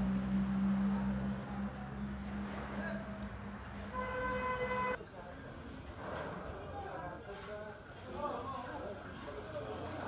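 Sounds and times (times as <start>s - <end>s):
vehicle horn steady note: 3.9s - 5.0s.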